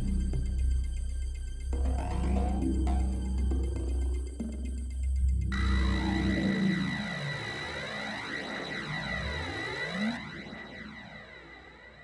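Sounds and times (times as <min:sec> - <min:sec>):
hissing synth with filter sweep: 0:01.8 - 0:12.0.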